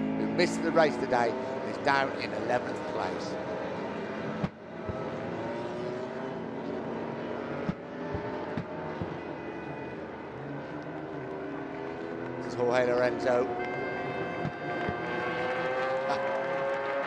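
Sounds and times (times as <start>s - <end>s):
motorcycle engines revving at low revs: 0.0s - 17.0s.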